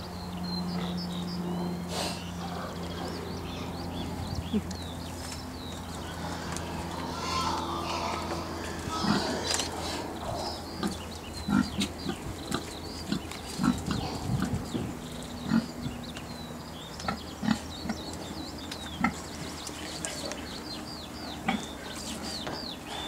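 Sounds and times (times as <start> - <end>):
pigs grunting: 6.0 - 16.0, 17.0 - 18.0, 19.0 - 19.3, 21.2 - 23.0.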